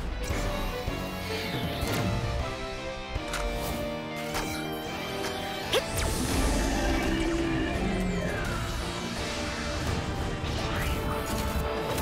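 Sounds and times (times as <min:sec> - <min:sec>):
dramatic orchestral score: 0:00.0 - 0:12.0.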